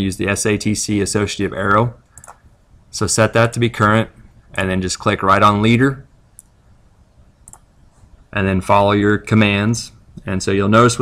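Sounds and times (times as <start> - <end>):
computer mouse clicks: 2.1 - 2.4, 6.4 - 6.6, 7.4 - 7.7.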